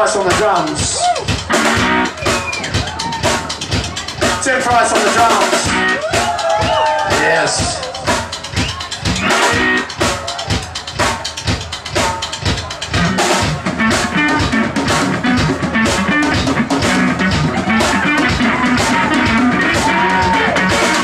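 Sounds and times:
guitar: 0:00.0 - 0:10.6, 0:12.4 - 0:21.0
drum kit playing: 0:00.0 - 0:21.0.

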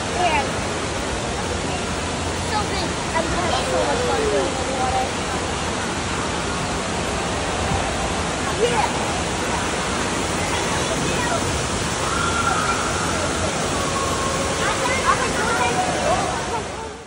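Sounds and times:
distant voices: 0:00.0 - 0:17.0
water rushing and splashing: 0:00.0 - 0:17.0.

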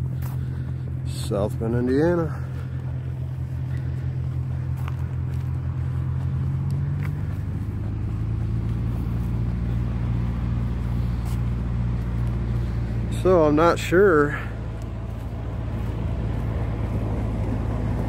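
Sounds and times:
low motor hum: 0:00.0 - 0:18.0.

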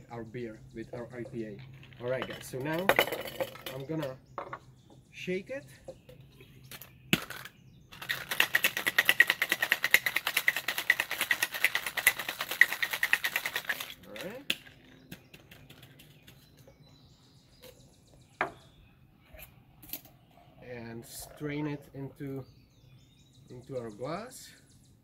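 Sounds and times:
ice rattling in cocktail shaker: 0:07.9 - 0:14.8.

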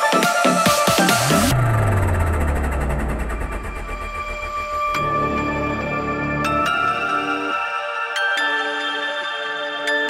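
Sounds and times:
fast fluttering pulse: 0:01.3 - 0:04.9
low bass drone sliding down: 0:01.3 - 0:06.4.

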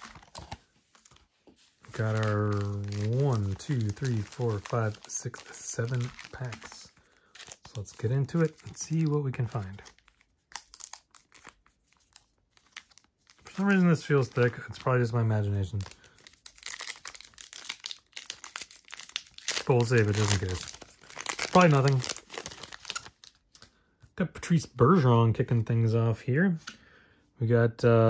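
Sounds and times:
foil wrapper crinkling: 0:01.8 - 0:23.4
trading cards clicking and rustling: 0:01.8 - 0:23.7.

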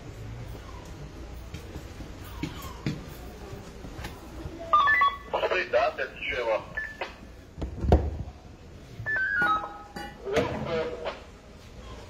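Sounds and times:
short electronic beeps: 0:06.7 - 0:07.2, 0:09.0 - 0:10.0.

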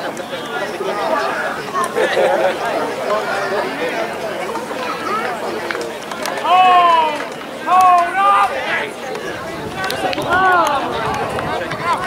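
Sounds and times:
people shouting and calling: 0:00.0 - 0:12.0
loud drawn-out shouted call: 0:06.3 - 0:11.3.

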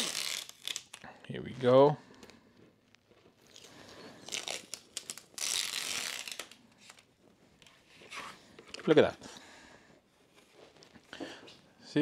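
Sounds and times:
tape ripping off plastic sheet: 0:00.0 - 0:01.0, 0:04.2 - 0:07.0.

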